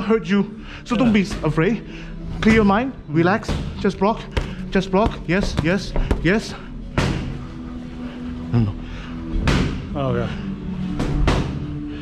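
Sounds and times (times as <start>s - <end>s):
punches hitting boxing gloves: 3.4s - 7.4s, 9.4s - 9.9s.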